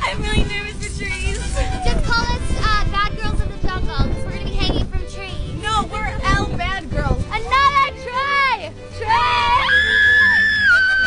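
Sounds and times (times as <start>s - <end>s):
moving vehicle rumble: 0.0s - 9.6s
wind noise: 0.0s - 10.8s
women calling out excitedly: 7.4s - 10.1s.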